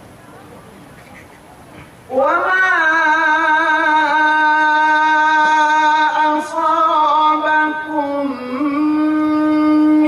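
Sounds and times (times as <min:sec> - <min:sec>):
man reciting through loudspeaker: 0:02.1 - 0:10.0.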